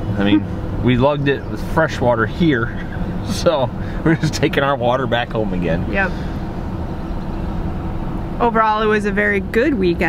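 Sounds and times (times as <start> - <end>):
road hiss: 0.0 - 8.4
engine rumble: 0.0 - 10.0.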